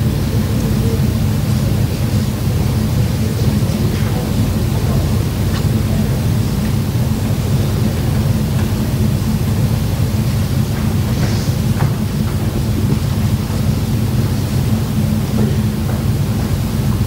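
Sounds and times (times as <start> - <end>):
constant hum: 0.0 - 17.0
steady low rumble: 0.0 - 17.0.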